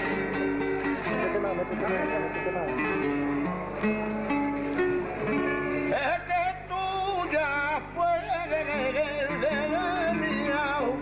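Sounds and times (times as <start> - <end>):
plucked flamenco guitar: 0.0 - 11.0
man singing flamenco: 5.3 - 11.0.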